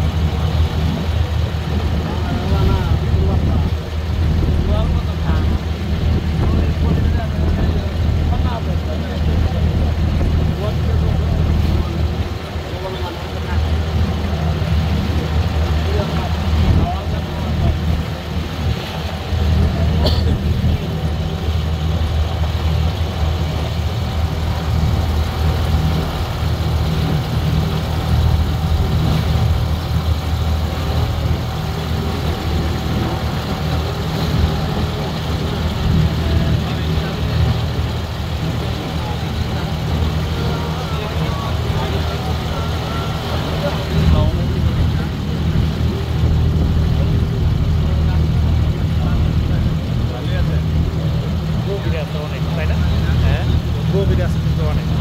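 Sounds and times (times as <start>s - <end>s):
boat engine droning: 0.0s - 55.0s
water washing around hull: 0.0s - 55.0s.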